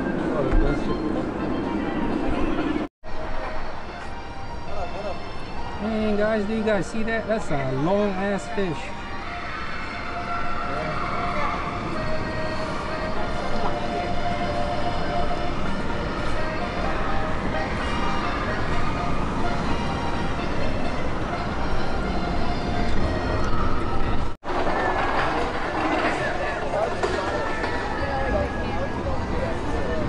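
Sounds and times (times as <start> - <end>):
faint music: 0.0 - 30.0
indistinct voices: 22.7 - 30.0.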